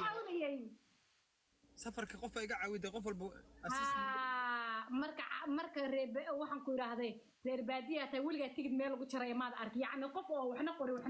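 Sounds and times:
person talking: 0:03.6 - 0:04.4.

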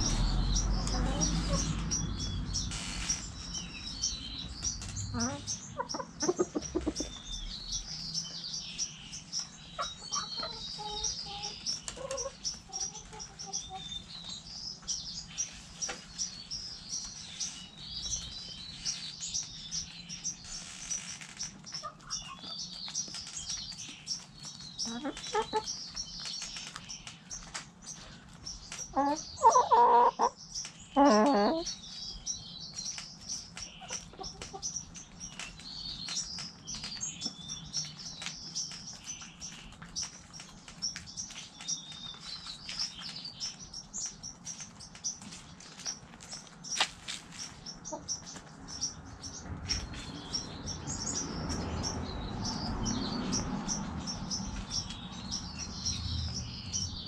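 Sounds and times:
high bird chirping: 0:00.0 - 0:46.0, 0:47.4 - 0:57.0
loud chicken calls: 0:28.9 - 0:30.4.

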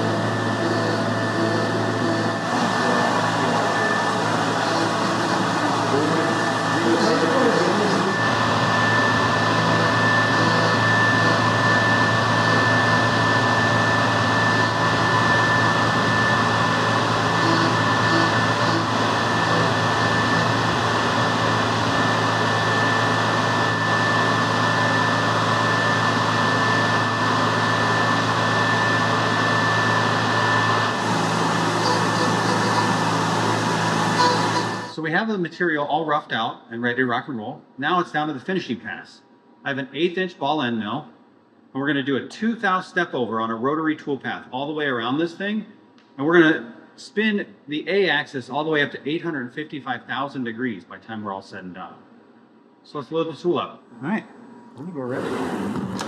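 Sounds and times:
low hum: 0:00.0 - 0:35.0
milling spindle whine: 0:00.0 - 0:35.0.

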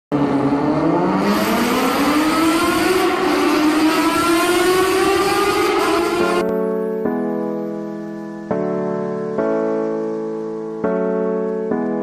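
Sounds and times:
engine revving up: 0:00.1 - 0:06.4.

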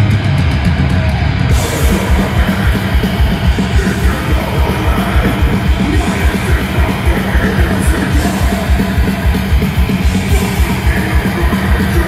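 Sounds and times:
distorted guitars: 0:00.0 - 0:12.0
fast kick drum beats: 0:01.5 - 0:12.0.

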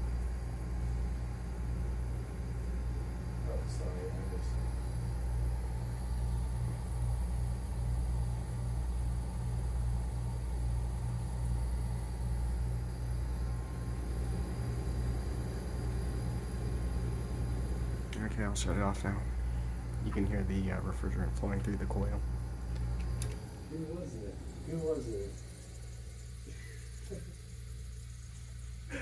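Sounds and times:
air conditioner compressor hum: 0:00.0 - 0:29.0
air hissing through vent: 0:00.0 - 0:29.0.

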